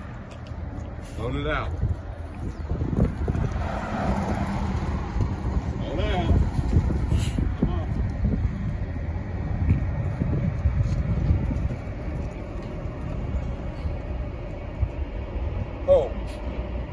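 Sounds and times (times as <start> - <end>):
bus engine rumbling: 0.0 - 16.9.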